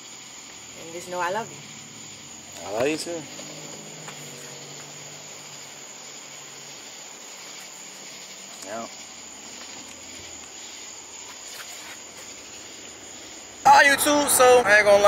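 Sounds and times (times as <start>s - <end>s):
crickets and night insects chirping: 0.0s - 15.0s.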